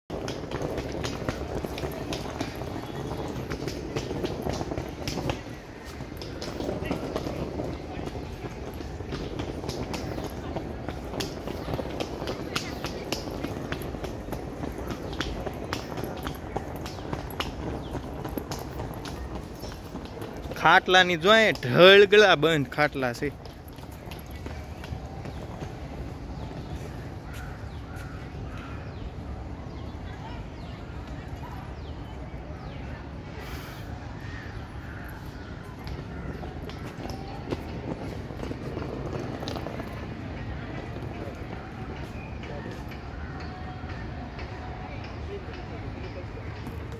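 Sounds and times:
wind rumble on microphone: 0.1s - 20.6s
footsteps on paved path: 0.1s - 46.9s
murmur of voices: 28.0s - 46.9s.

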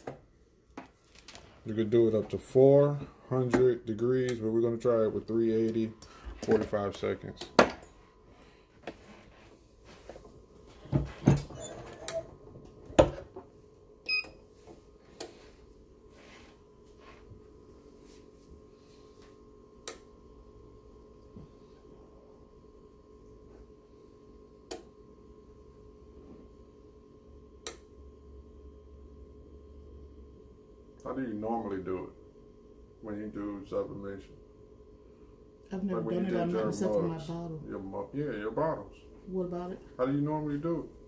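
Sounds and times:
faint steady hum: 0.0s - 41.0s.

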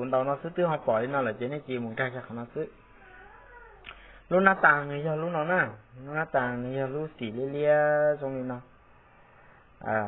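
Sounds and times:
man speaking: 0.0s - 2.8s, 4.3s - 8.7s, 9.8s - 10.0s.

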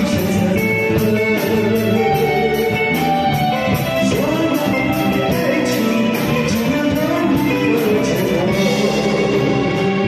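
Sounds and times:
drums keeping steady beat: 0.0s - 10.0s
electric guitar: 0.0s - 10.0s.

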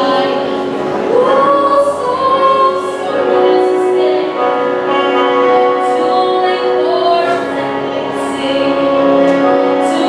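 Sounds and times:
woman singing with choir: 0.0s - 10.0s.

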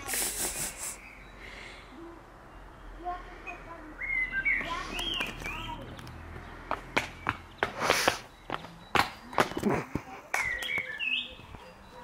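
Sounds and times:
bird chirping: 0.4s - 12.0s.

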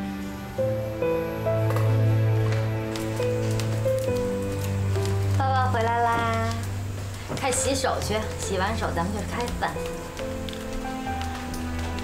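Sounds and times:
sustained background music notes: 0.0s - 12.0s.

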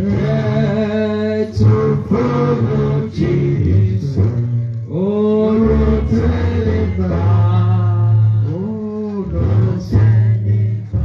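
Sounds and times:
low steady bass line: 0.0s - 11.0s
voices singing long notes: 0.0s - 11.0s.

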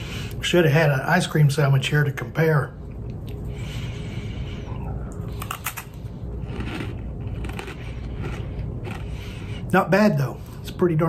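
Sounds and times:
steady low hum: 0.0s - 11.0s
crunchy chewing: 5.2s - 9.7s.

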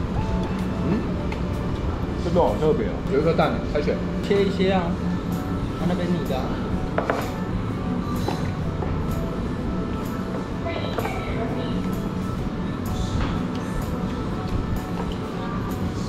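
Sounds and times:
background music: 0.0s - 16.0s.

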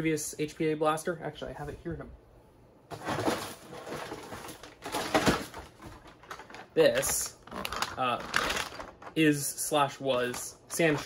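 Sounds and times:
plastic bag rustling: 2.9s - 9.2s, 10.2s - 11.0s.

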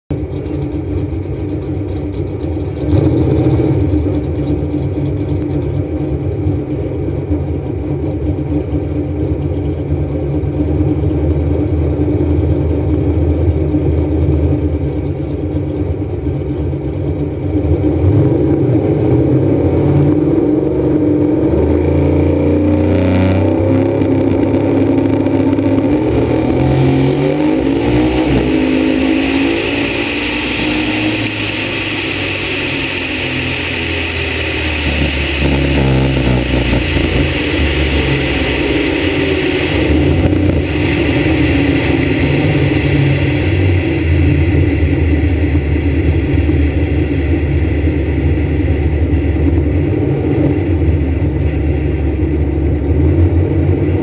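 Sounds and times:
race car engine revving: 0.3s - 6.7s, 10.9s - 54.0s.

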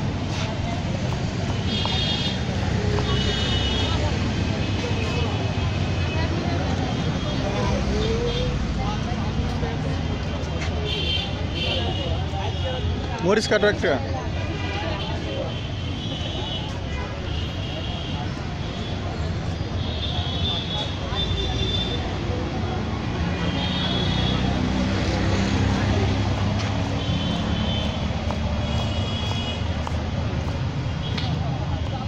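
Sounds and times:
people talking: 0.0s - 32.0s
traffic rumble: 0.0s - 32.0s.

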